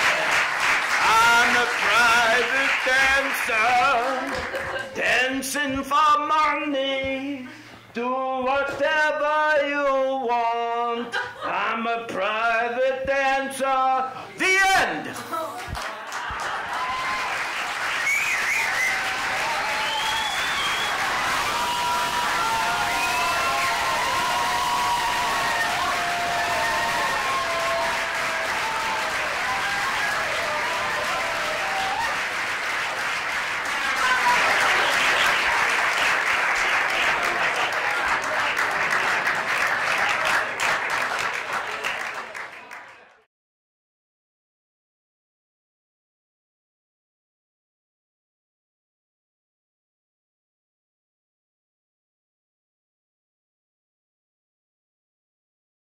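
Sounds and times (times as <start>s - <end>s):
audience applauding: 0.0s - 5.0s, 15.6s - 43.3s.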